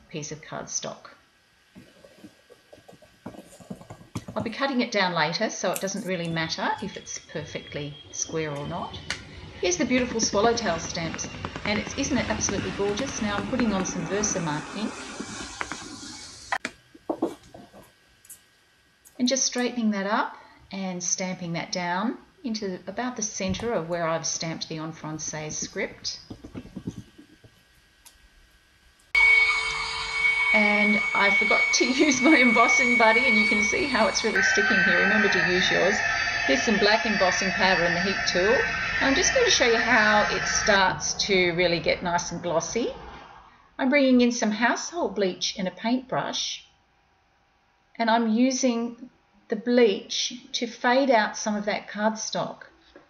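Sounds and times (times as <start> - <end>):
heat tool whirring hum: 0.0 - 45.3.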